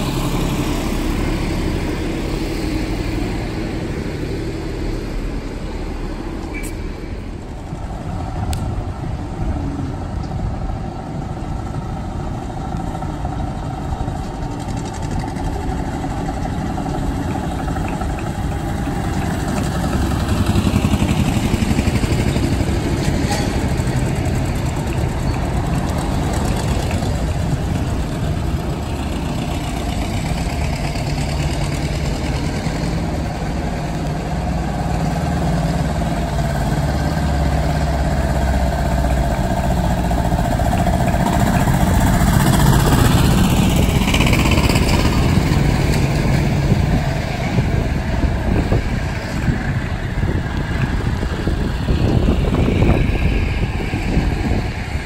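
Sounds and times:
tractors driving on cobblestones: 0.0s - 55.0s.

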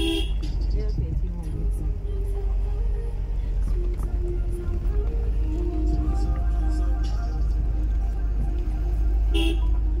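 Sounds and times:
wind buffeting microphone: 0.6s - 2.0s.

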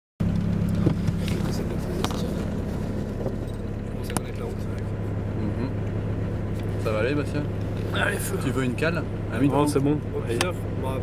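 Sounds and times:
diesel engine running inside cabin: 0.2s - 11.0s.

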